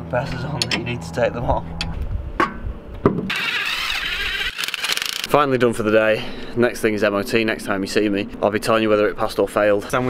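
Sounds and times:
impact wrench spinning: 3.3 - 5.3.

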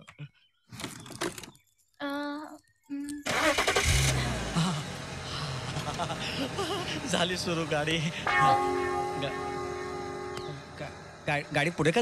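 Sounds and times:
car engine starting and running: 3.2 - 12.0.

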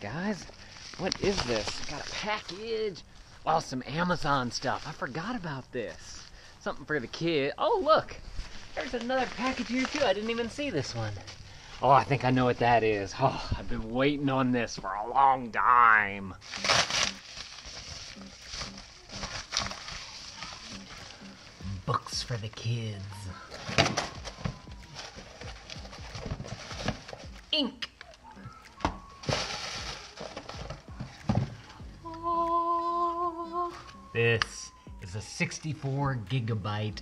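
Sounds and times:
package paper rustling: 0.6 - 2.6, 8.7 - 11.5, 16.4 - 21.6, 23.5 - 27.4, 28.7 - 31.6
cardboard ripping: 16.4 - 20.7, 29.1 - 31.5
person humming: 30.8 - 35.2.

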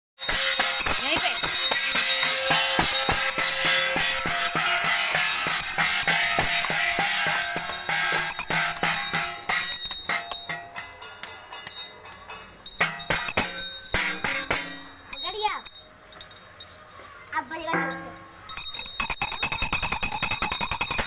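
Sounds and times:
stick beating metal plates: 0.2 - 16.7, 17.6 - 21.0.

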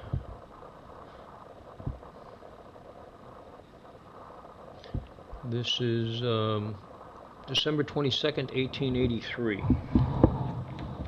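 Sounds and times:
room tone hum: 0.0 - 11.0.

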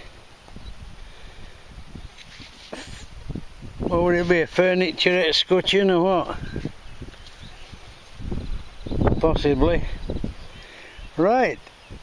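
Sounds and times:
wind rumbling on microphone: 0.0 - 12.0
microphone handling rustles: 1.8 - 10.5.

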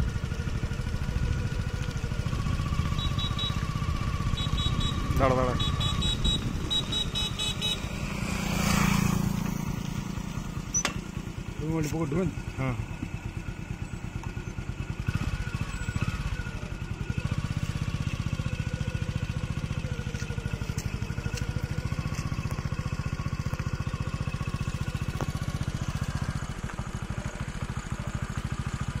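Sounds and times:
vehicle engine running: 0.0 - 29.0.

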